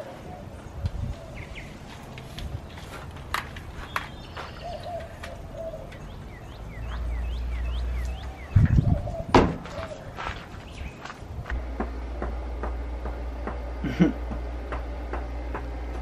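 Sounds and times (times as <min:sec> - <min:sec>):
small bird chirping: 0:03.8 - 0:11.1
heavy thump: 0:08.6 - 0:09.8.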